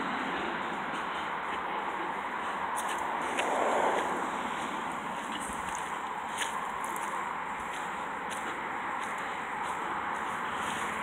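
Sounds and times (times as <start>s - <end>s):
distant road traffic hiss: 0.0s - 11.0s.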